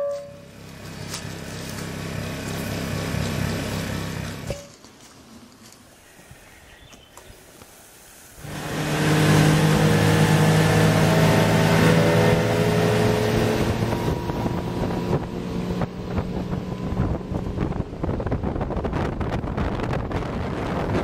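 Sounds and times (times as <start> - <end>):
outboard motor running: 0.0 - 4.5, 8.4 - 21.0
water rushing past hull: 7.3 - 21.0
wind buffeting microphone: 9.3 - 21.0.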